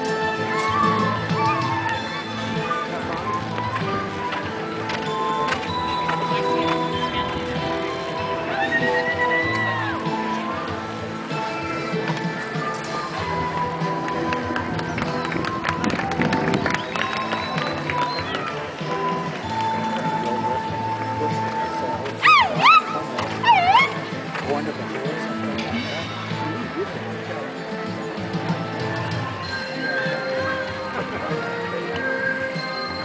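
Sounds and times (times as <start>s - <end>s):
music: 0.0s - 33.0s
horse hoofbeats galloping: 13.1s - 20.2s
high-pitched whooping yells: 22.2s - 24.0s.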